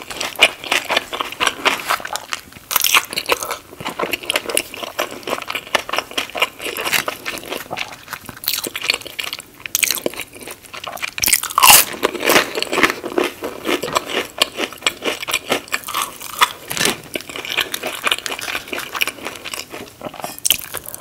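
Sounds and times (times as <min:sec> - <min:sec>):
crunchy chewing of fried food: 0:00.0 - 0:21.0.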